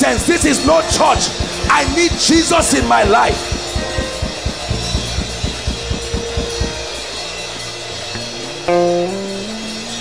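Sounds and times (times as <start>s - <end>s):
drum kit beating: 0.0s - 7.6s
bass and chord notes: 0.0s - 10.0s.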